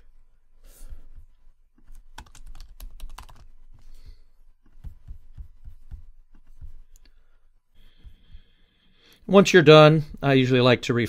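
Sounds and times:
computer keyboard typing: 1.9 - 3.6.

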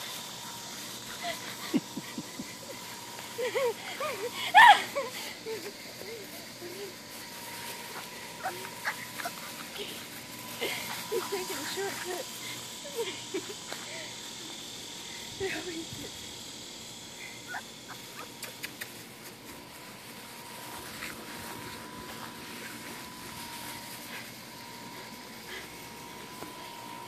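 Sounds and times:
puppies growling and yipping: 0.2 - 12.6, 17.3 - 19.2
quiet scuffling: 5.3 - 12.8, 18.1 - 27.0.

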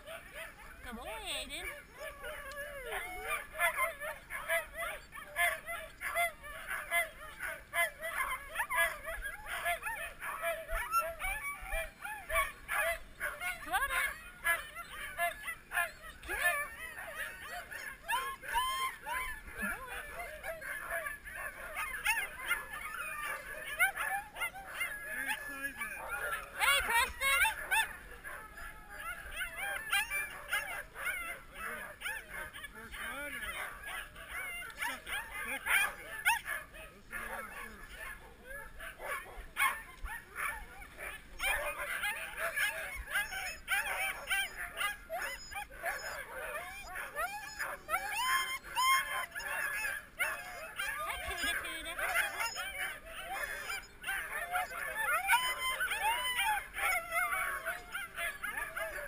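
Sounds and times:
huskies howling: 0.0 - 59.0.

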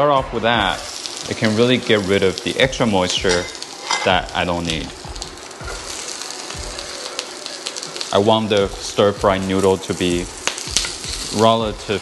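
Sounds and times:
greens sizzling in hot oil: 0.0 - 12.0.

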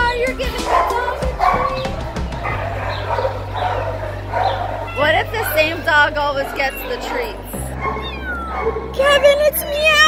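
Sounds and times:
dogs barking with echo: 0.4 - 10.0.

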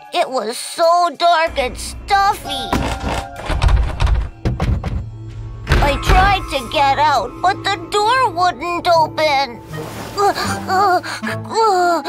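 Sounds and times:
background music: 0.0 - 12.0
door thudding against bolt: 2.7 - 5.1.

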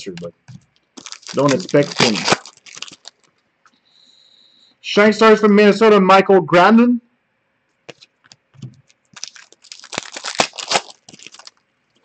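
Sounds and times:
cards rustling and clicking: 0.0 - 3.3, 7.9 - 11.6.

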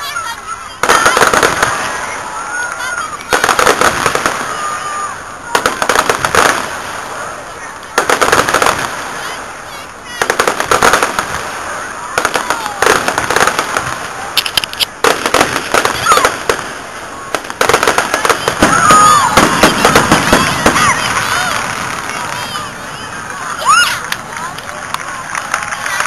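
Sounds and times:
fireworks crackling pops: 0.0 - 26.0.

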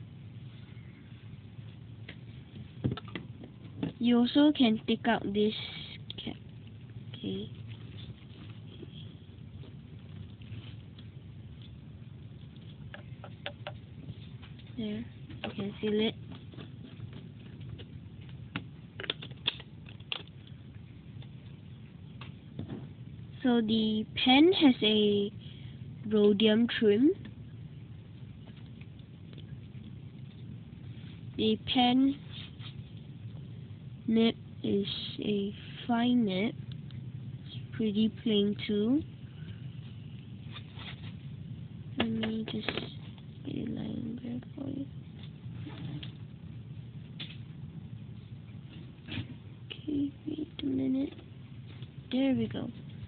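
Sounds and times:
low steady hum: 0.0 - 53.0.

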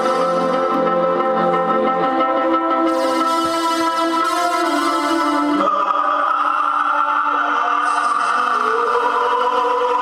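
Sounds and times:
sustained synthesizer chords: 0.0 - 10.0.

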